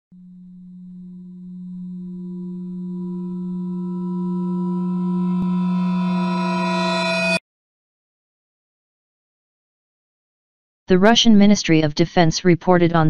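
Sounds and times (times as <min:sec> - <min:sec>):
sustained low drone tone: 0:00.1 - 0:07.4.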